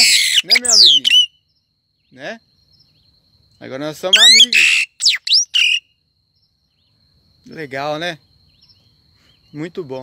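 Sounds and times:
songbird whistling call: 0.0s - 2.2s, 4.1s - 6.0s.

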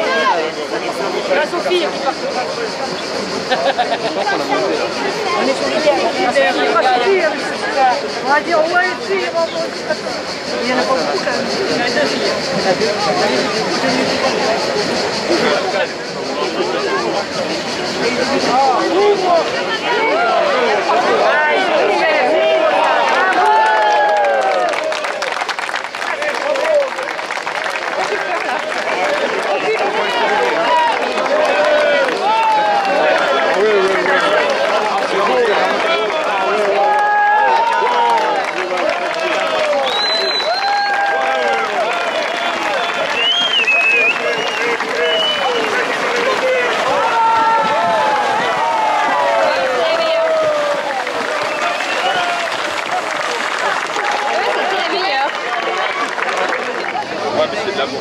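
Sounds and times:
crowd shouting: 0.0s - 25.5s, 26.1s - 58.0s.

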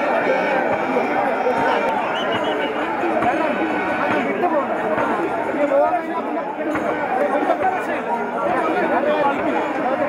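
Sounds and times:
crowd chattering: 0.0s - 10.0s.

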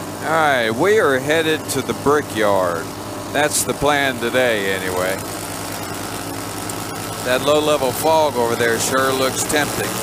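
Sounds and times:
paramotor engine droning: 0.0s - 10.0s.

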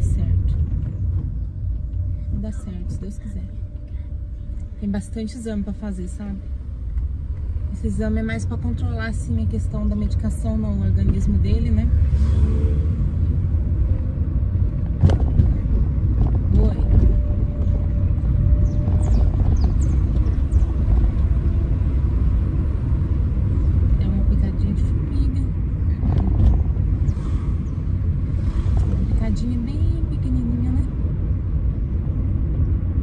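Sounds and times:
car engine and road rumble: 0.0s - 33.0s.

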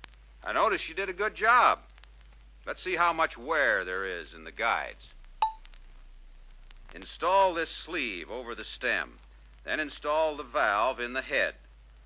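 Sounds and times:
faint clicks: 0.0s - 0.4s, 1.9s - 2.7s, 5.0s - 7.6s
low hum: 5.0s - 7.1s.

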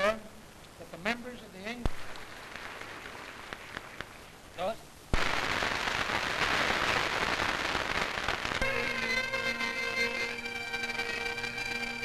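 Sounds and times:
bagpipes droning: 8.6s - 12.0s.

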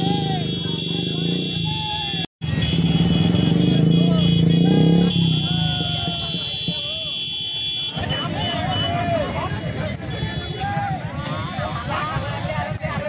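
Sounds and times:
motorcycle engines idling: 2.8s - 13.0s
crowd chatter: 3.8s - 13.0s.

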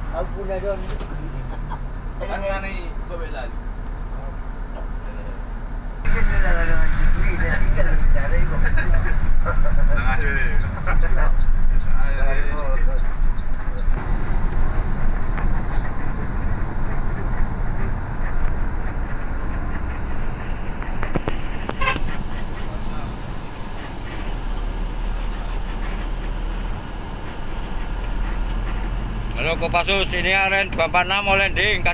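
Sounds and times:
bus engine and road rumble: 0.0s - 31.9s
voices talking: 0.0s - 31.9s.

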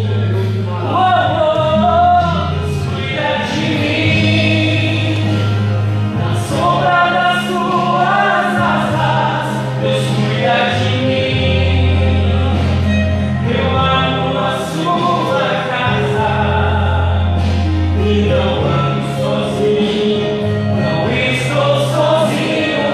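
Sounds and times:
low bass notes: 0.0s - 22.9s
man singing gospel song: 0.0s - 22.9s.

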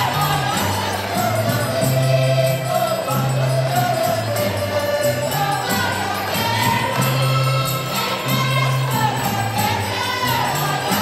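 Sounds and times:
accordions and guitars: 0.0s - 11.0s
jingling percussion beat: 0.0s - 11.0s
voices singing together: 0.0s - 11.0s.

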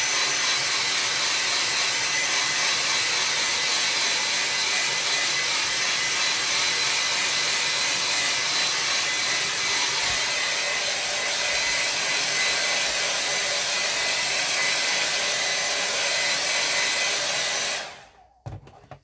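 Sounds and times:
hair dryer blowing: 0.0s - 18.6s.

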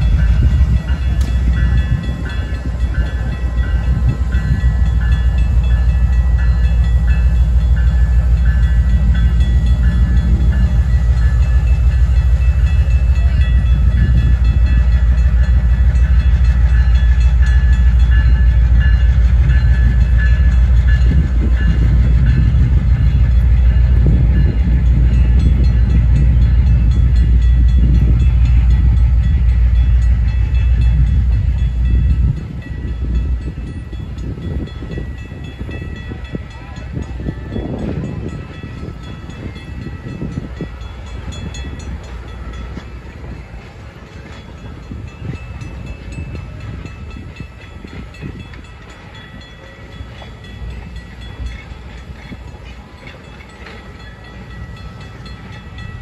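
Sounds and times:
diesel locomotive rumble: 0.0s - 56.0s.

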